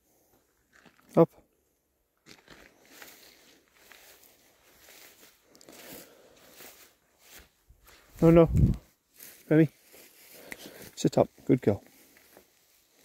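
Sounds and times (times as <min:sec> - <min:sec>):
footsteps through dry grass: 0:00.1 - 0:01.1, 0:02.2 - 0:13.0.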